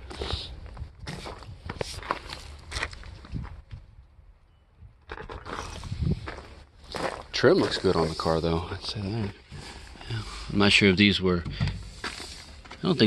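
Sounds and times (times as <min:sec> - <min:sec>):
footsteps on gravel: 0:00.0 - 0:03.7, 0:05.1 - 0:11.1, 0:11.7 - 0:13.0.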